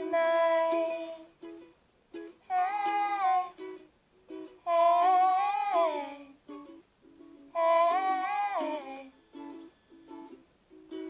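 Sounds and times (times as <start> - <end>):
high wordless vocal: 0.0 - 1.3, 2.5 - 3.7, 4.6 - 6.4, 7.5 - 10.2
ukulele picking: 0.0 - 11.0.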